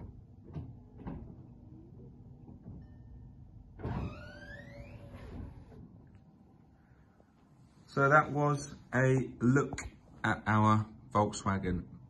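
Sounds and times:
roof mechanism whirring whine: 3.7s - 6.2s.

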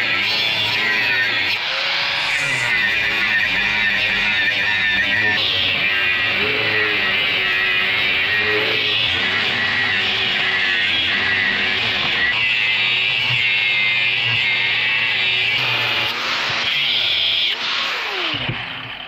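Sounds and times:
angle grinder cutting steel: 0.0s - 19.0s.

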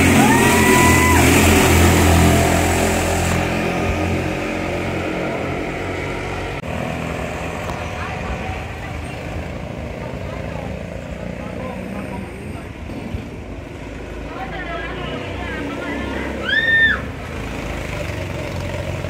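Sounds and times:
go-kart engines running: 0.0s - 19.0s.

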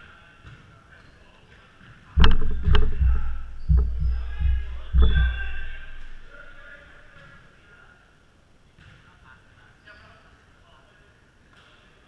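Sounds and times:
sharp clicks: 2.2s - 6.6s
heavy deep thumps: 2.2s - 7.1s.

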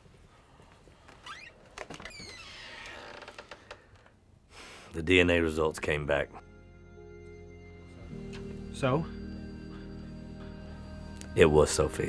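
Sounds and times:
door creaking on hinges: 1.2s - 4.2s.

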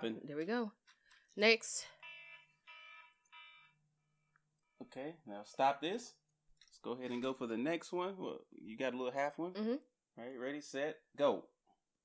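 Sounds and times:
faint electronic timer beeps: 1.8s - 4.9s.

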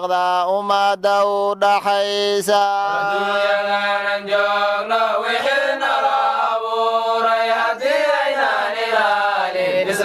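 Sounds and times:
devotional song singing: 0.0s - 10.0s.

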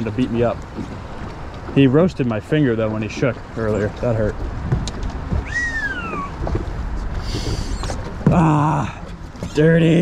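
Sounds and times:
low rumbling: 0.0s - 10.0s.

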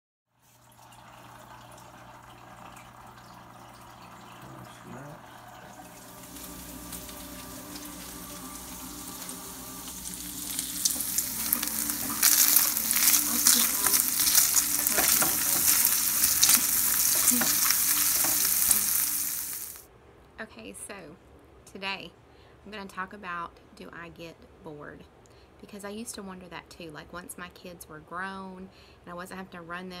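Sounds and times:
faint steady hum: 0.6s - 30.0s
bacon sizzling in frying pan: 5.9s - 19.8s
spatula stirring: 10.6s - 19.7s.

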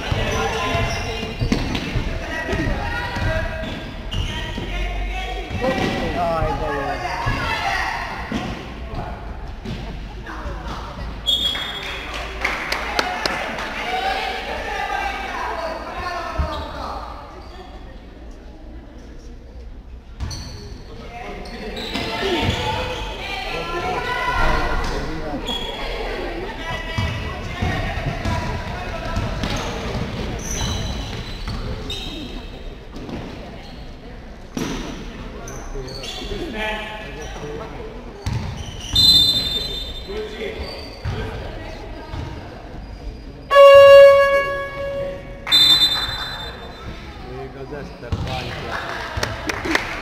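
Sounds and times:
referee's whistle: 11.2s - 11.8s, 38.8s - 40.1s, 43.5s - 46.8s
basketball bouncing on court: 38.2s - 38.6s, 48.1s - 48.4s
players calling out: 43.4s - 47.1s
loud buzzer: 43.5s - 46.4s.

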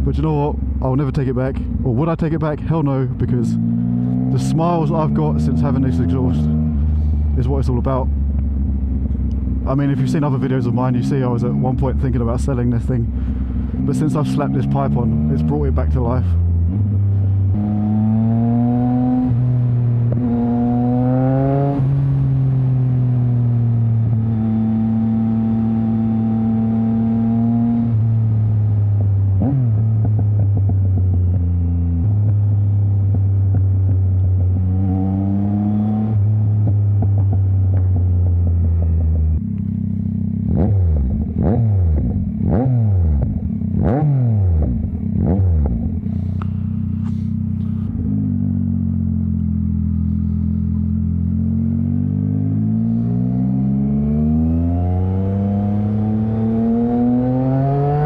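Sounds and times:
motorcycle engine accelerating: 1.6s - 58.0s
sharp exhaust pops: 45.5s - 48.0s.

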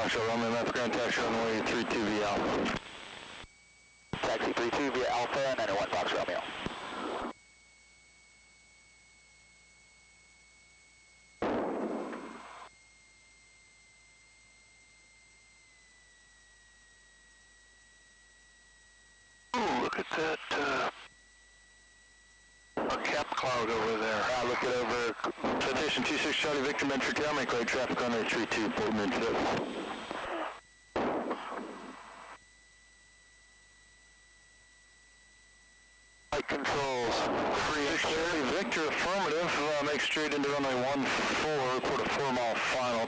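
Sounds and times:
radio static burst: 0.0s - 3.4s, 4.2s - 7.3s, 11.4s - 12.7s, 19.6s - 21.1s, 22.8s - 32.4s, 36.3s - 43.0s
faint electrical whine: 0.0s - 43.0s.

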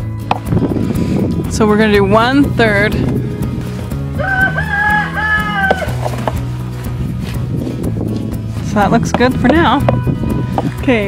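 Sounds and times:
background music: 0.0s - 11.0s
rooster crowing: 4.2s - 6.0s.

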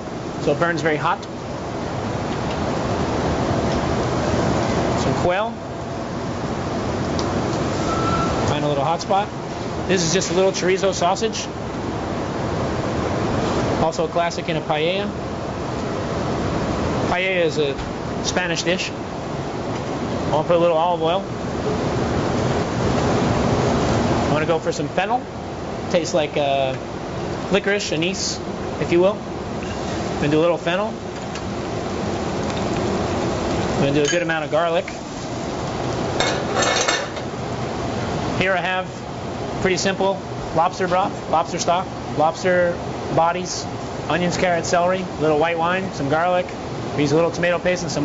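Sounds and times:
grill fire hissing: 0.0s - 48.0s.

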